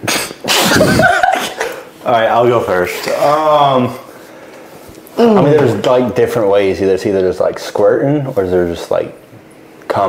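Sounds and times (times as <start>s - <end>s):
person laughing explosively: 0.5s - 1.9s.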